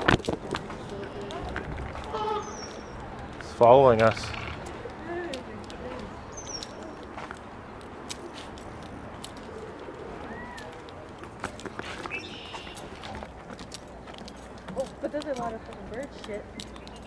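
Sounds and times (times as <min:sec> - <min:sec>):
outdoor background noise: 0:00.0 - 0:17.0
faint bird calls: 0:00.9 - 0:03.0, 0:12.0 - 0:13.0.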